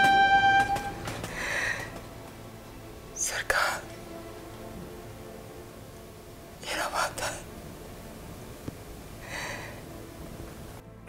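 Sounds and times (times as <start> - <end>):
train horn: 0.0 - 1.2
breathy whispers: 6.6 - 7.5.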